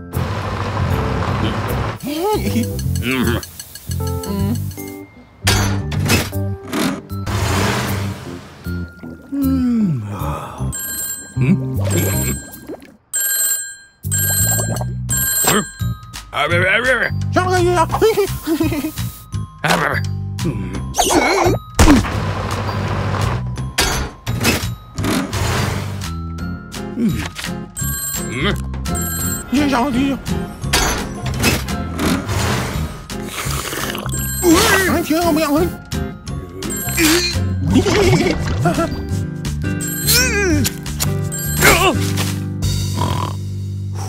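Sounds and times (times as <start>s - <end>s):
cartoon background music: 0.9s - 12.6s, 14.0s - 22.1s, 22.8s - 44.0s
telephone ringing: 10.8s - 16.1s, 27.8s - 29.7s, 39.8s - 40.2s.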